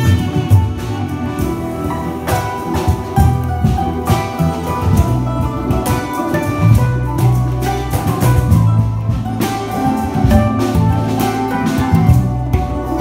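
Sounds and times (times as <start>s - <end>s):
handpan melody: 0.0s - 13.0s
plucked string instruments: 0.0s - 13.0s.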